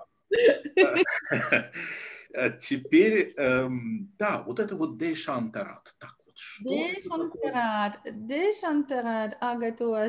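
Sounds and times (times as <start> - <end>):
people laughing over video call: 0.3 - 2.3.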